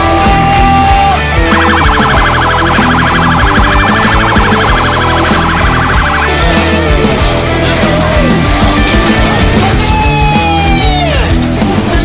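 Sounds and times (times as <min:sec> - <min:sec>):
heavy rock music: 0:00.0 - 0:12.0
siren warbling: 0:01.4 - 0:07.4.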